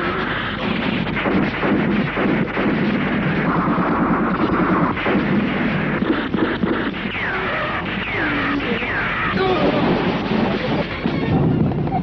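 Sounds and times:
gunfire barrage: 0.0s - 11.8s.

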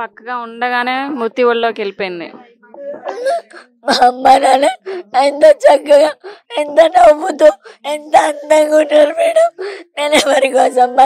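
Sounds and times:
woman speaking: 0.0s - 5.0s
woman whimpering sobs: 2.8s - 6.6s, 7.5s - 7.9s, 9.4s - 10.5s.

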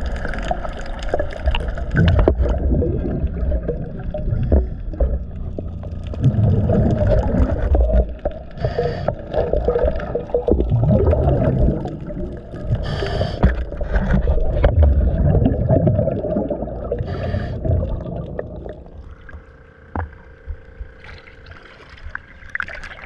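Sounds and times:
gurgling exhaled bubbles: 0.0s - 19.6s
regulator inhale hiss: 8.6s - 9.4s, 12.7s - 13.8s, 17.0s - 17.7s.

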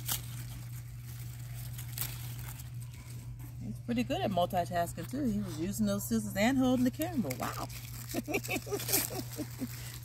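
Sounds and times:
leaves rustling: 0.0s - 3.8s, 6.7s - 10.0s
steady low hum: 0.0s - 10.0s.

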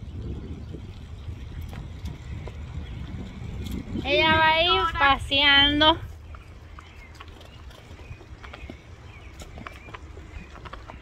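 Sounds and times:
tyres rolling on asphalt: 0.0s - 11.0s
wind on microphone: 0.0s - 11.0s.

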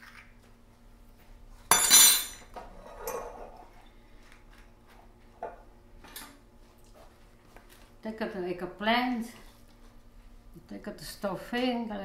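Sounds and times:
metal kitchenware clanking: 1.7s - 3.4s.

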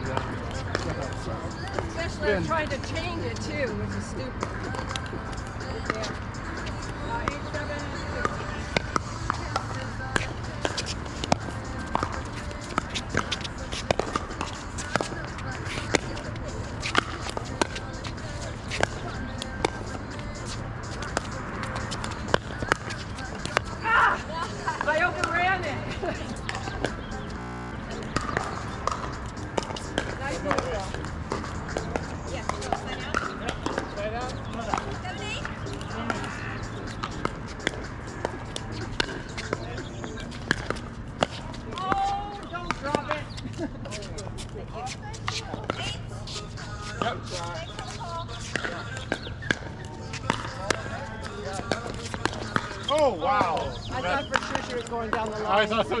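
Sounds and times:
ball bouncing on court: 0.1s - 2.0s, 5.8s - 20.0s, 20.9s - 23.8s, 24.7s - 43.4s, 48.5s - 52.9s.

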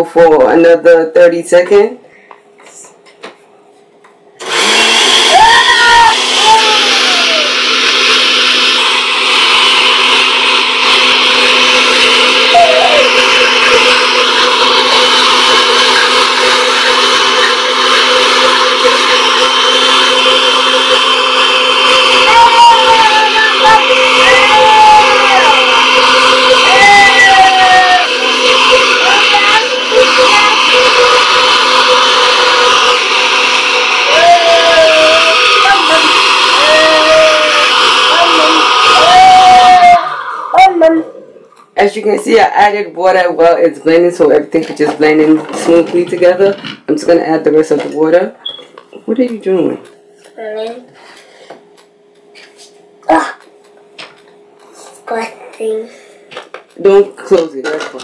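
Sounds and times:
blender running: 4.4s - 55.4s, 56.6s - 58.0s.

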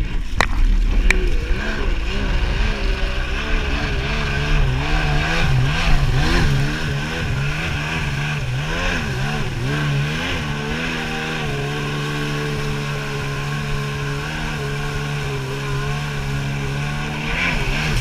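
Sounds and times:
jet ski engine running: 0.0s - 18.0s.

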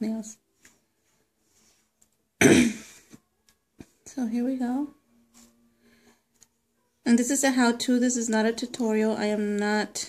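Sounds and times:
woman coughing: 2.4s - 3.0s.

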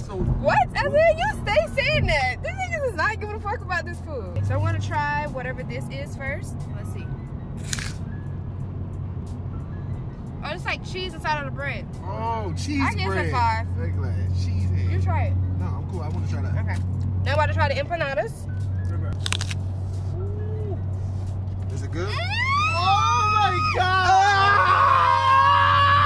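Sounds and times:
car cabin road rumble: 0.0s - 26.0s
paper food wrapper crinkling: 19.2s - 19.6s.

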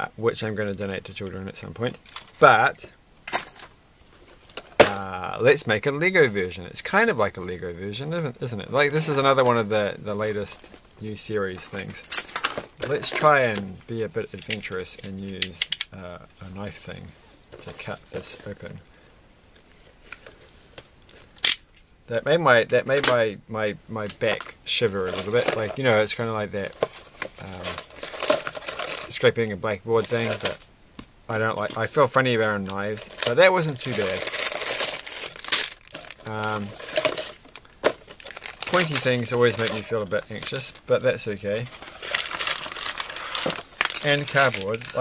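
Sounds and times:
plastic bags crinkling: 11.6s - 13.5s, 25.0s - 29.3s, 30.0s - 30.7s, 31.6s - 45.0s.

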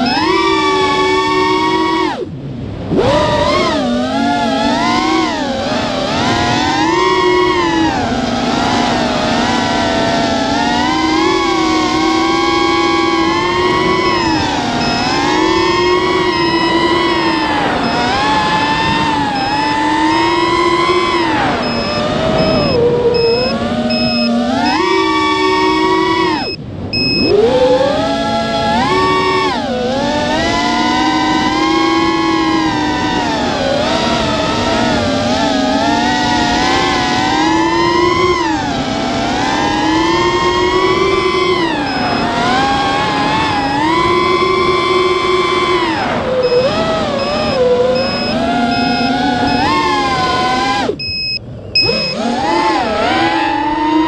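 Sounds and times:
quadcopter motors whining: 0.0s - 54.0s
faint steady beeping: 10.1s - 27.4s, 40.6s - 45.8s, 46.4s - 52.3s.

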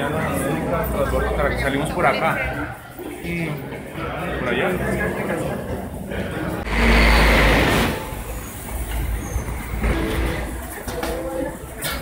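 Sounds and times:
crowd chatter: 0.0s - 12.0s
loud rushing noise: 6.6s - 10.6s.

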